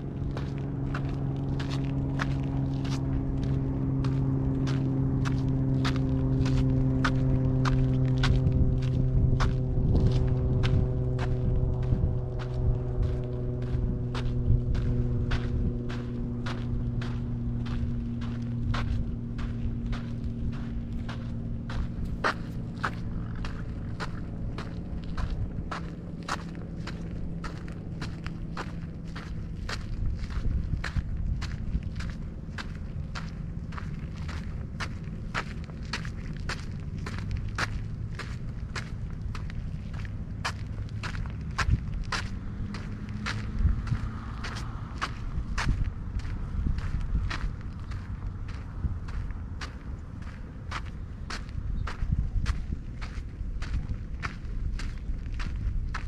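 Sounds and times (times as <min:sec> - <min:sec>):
footsteps on outdoor trail: 0:00.0 - 0:56.0
low engine drone: 0:00.0 - 0:56.0.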